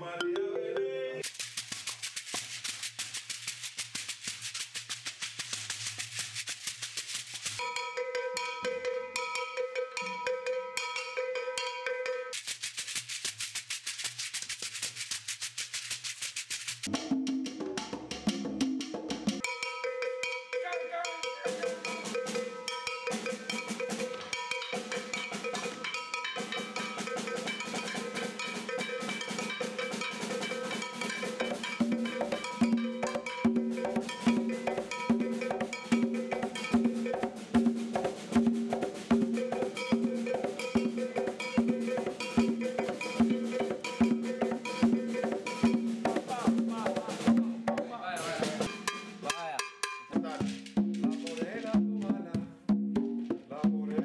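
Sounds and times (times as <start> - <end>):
pitched instrument notes: 0.0 - 1.3
hand drum playing: 0.0 - 2.6, 16.4 - 54.0.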